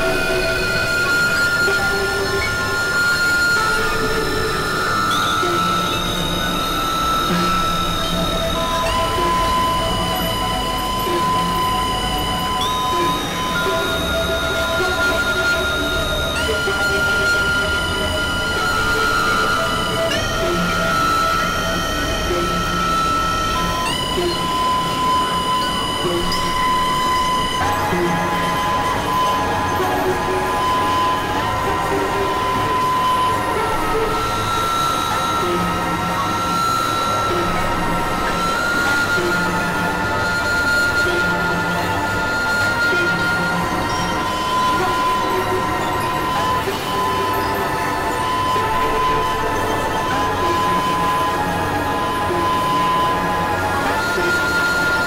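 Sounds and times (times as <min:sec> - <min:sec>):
synthesizer drone music: 0:00.0 - 0:55.0.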